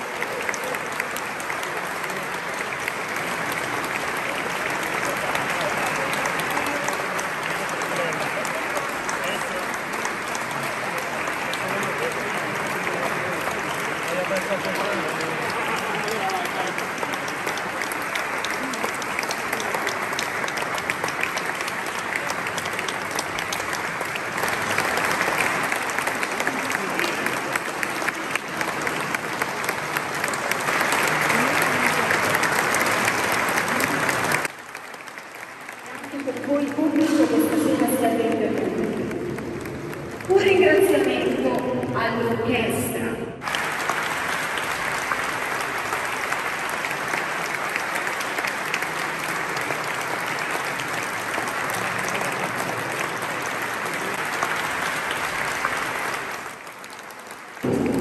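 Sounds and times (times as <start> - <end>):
audience applause: 0.0 - 42.6, 43.4 - 58.0.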